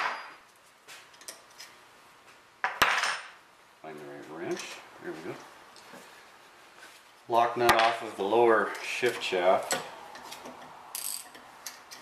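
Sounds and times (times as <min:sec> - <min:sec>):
metal tools clinking: 0:09.6 - 0:12.0.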